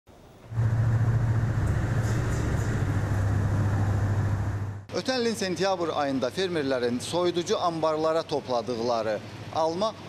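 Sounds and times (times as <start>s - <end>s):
machine humming and rushing: 0.4s - 4.9s.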